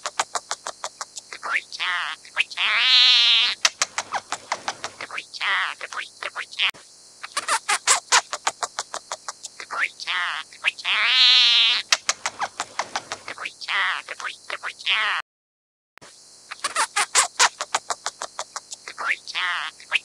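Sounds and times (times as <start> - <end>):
bird clicking notes: 3.6 - 5.0, 11.8 - 13.3.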